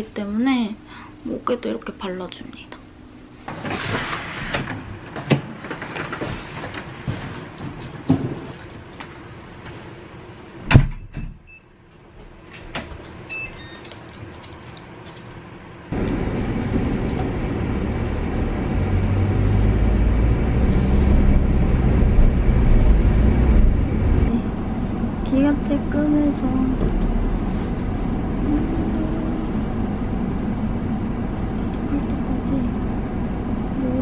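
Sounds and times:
car road and engine noise: 15.7s - 34.0s.

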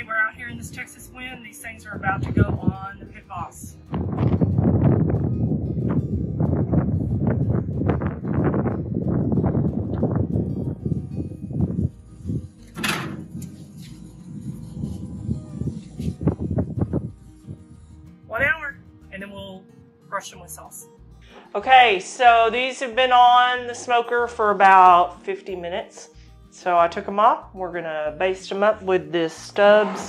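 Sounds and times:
wind buffeting microphone: 0.0s - 19.5s
wire racks rattling and scraping: 12.6s - 14.2s.

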